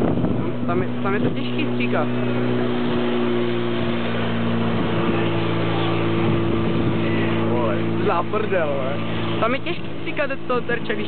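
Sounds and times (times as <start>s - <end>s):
pump engine running: 0.0s - 11.0s.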